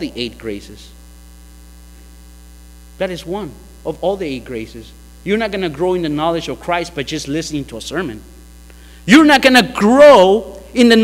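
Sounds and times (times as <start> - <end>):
low electrical mains hum: 0.0 - 11.0.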